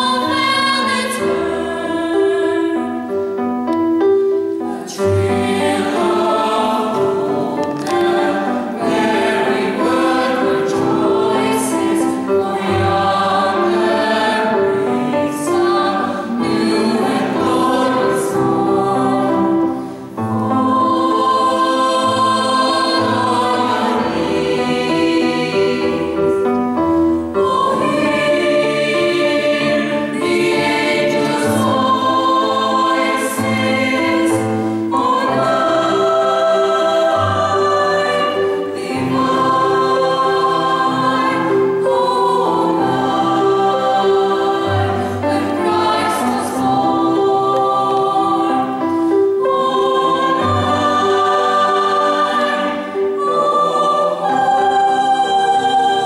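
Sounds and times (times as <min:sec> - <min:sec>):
mixed choir singing: 0:00.0 - 0:03.8, 0:04.4 - 0:56.0.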